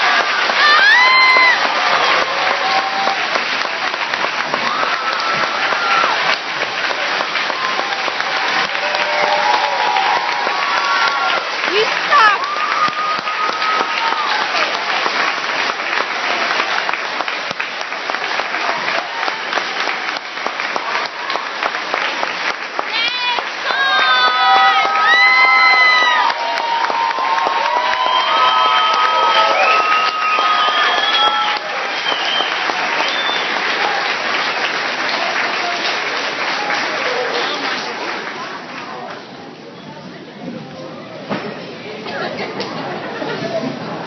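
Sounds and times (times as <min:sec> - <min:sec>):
audience applauding: 0:00.0 - 0:39.2
crowd shouting and cheering: 0:00.0 - 0:39.2.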